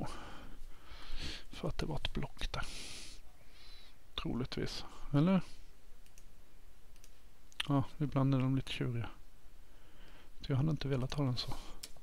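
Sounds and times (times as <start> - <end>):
man speaking: 1.5 - 2.8, 4.2 - 5.6, 7.6 - 9.2, 10.4 - 11.8.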